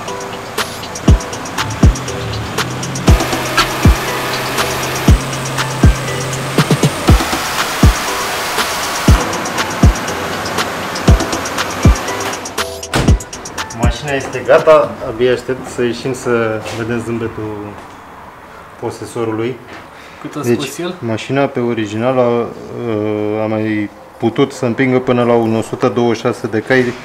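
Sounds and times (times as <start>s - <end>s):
electronic beat with kicks and hi-hats: 0.0s - 14.5s.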